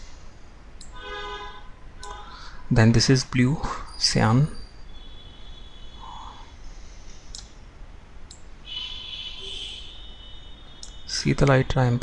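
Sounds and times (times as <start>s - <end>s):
low steady hum: 0.0s - 12.0s
computer mouse clicks: 7.2s - 7.6s.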